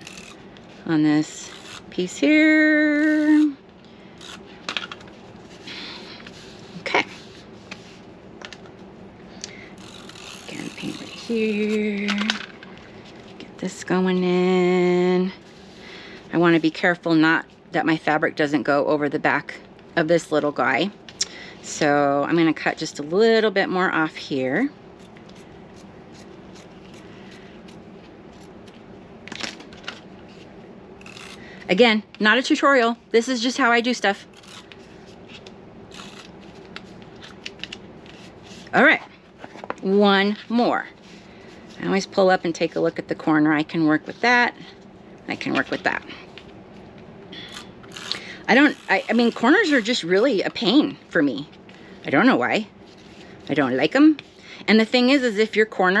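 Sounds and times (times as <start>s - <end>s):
low room hum: 0.0s - 56.0s.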